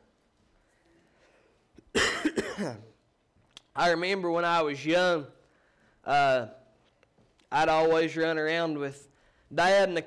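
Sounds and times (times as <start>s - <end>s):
man coughing: 1.9s - 3.0s.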